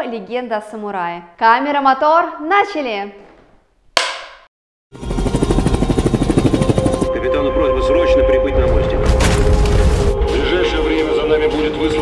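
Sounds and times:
clapperboard snap: 4.0 - 4.5
steady tone: 5.0 - 9.1.

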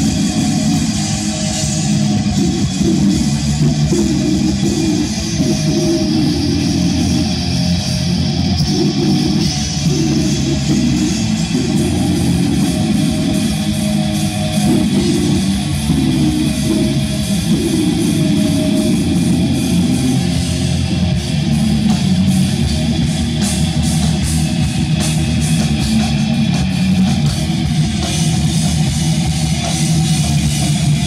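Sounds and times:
bass guitar: 0.0 - 31.0
distorted electric guitar: 0.0 - 31.0
drums: 0.0 - 31.0.

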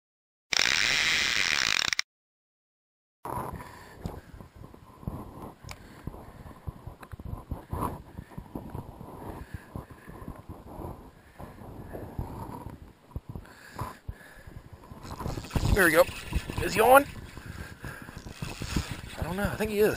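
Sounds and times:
fishing reel being cranked: 0.5 - 2.0, 15.0 - 19.9.

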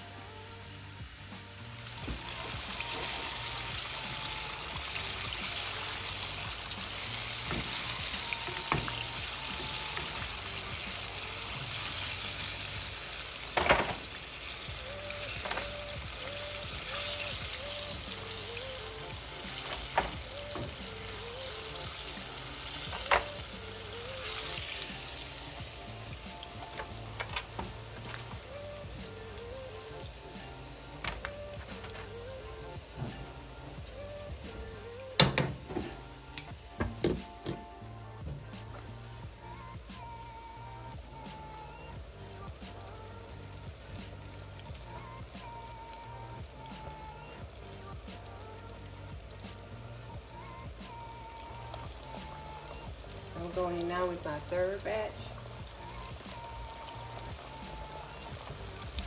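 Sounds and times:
meat deep-frying in oil: 0.6 - 59.0.

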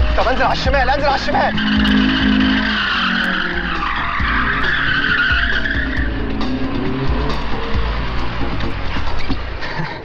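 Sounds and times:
car tyres squealing: 0.0 - 10.0.

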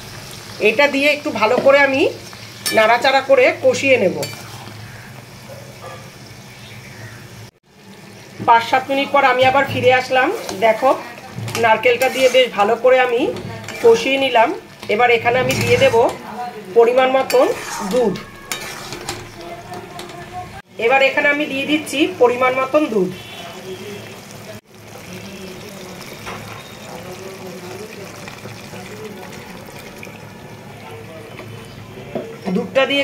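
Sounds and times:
food sizzling: 0.0 - 33.0
metal spatula scraping a pan: 4.0 - 5.1, 9.4 - 20.4.

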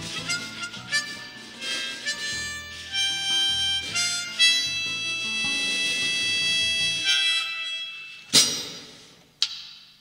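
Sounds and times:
fingerpicked acoustic guitar: 0.0 - 7.0
harmonica long high note: 0.0 - 8.4.

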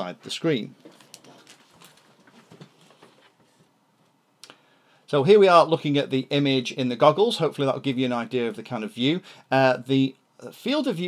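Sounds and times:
faint handling clicks and rustles: 0.8 - 4.2.

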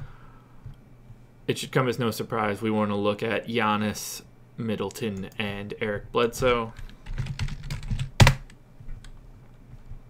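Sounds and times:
computer keyboard keystrokes: 6.8 - 9.2.

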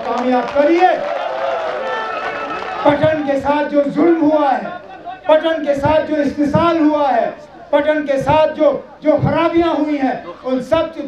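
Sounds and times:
man's amplified voice holding a vowel: 0.0 - 1.0, 2.8 - 11.0
man speaking: 2.8 - 11.0.

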